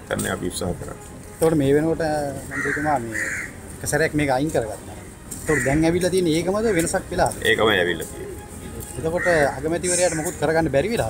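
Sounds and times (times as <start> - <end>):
crow cawing: 2.4 - 3.9, 4.9 - 7.4, 9.0 - 10.7.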